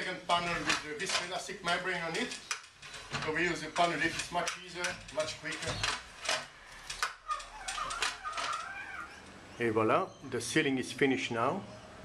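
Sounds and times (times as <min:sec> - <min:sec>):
winch clicks: 0:00.5 - 0:09.3
wavering squeak: 0:07.2 - 0:09.3.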